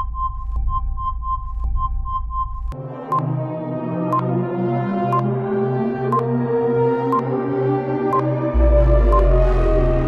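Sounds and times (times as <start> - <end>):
ambient synthesizer music: 2.7 - 10.0
low synthesizer drone: 2.8 - 10.0
rapid electronic beeps: 8.2 - 10.0.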